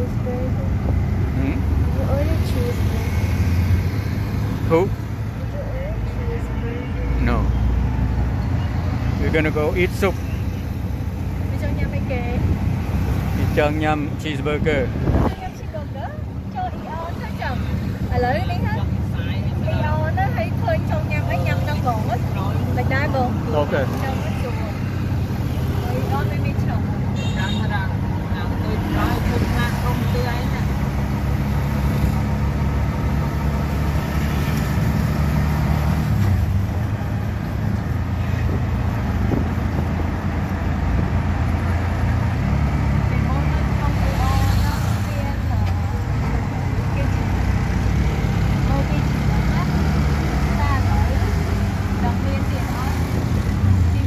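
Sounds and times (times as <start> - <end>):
city traffic: 0.0 - 54.0
vehicle engine and road noise: 0.0 - 54.0.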